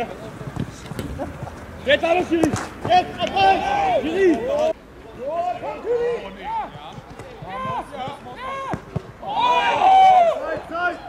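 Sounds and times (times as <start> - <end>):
men shouting: 2.9 - 4.7.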